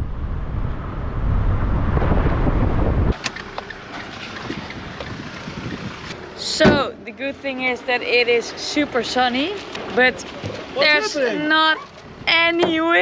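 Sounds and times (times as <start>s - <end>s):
wind buffeting microphone: 0.0s - 7.5s, 11.9s - 13.0s.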